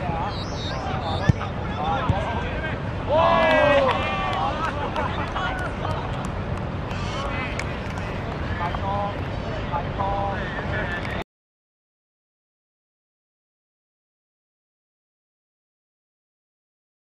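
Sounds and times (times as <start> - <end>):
players cheering: 0.1 - 6.3
football kick thud: 1.2 - 2.3.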